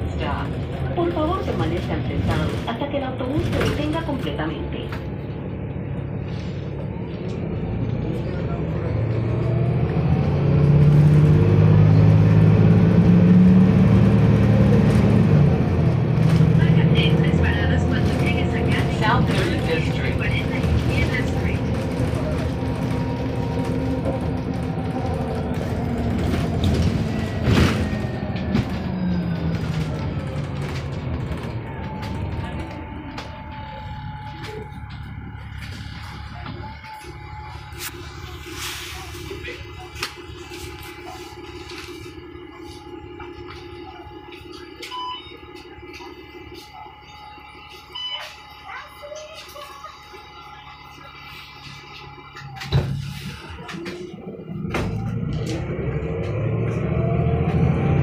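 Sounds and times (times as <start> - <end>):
bus engine accelerating: 0.0 - 58.0.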